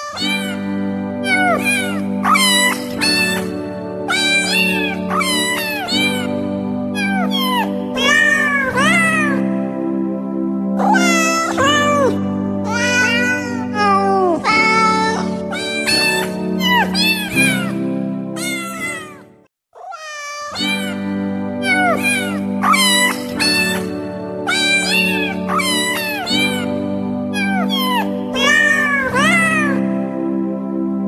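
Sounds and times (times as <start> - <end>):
cat meows strung into a tune: 4.1 - 6.3, 18.4 - 19.2, 19.8 - 23.8, 24.5 - 26.7, 27.4 - 29.8.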